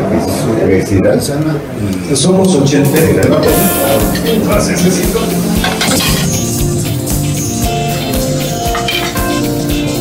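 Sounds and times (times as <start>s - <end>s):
live band playing: 2.9s - 10.0s
steady drum beat: 2.9s - 10.0s.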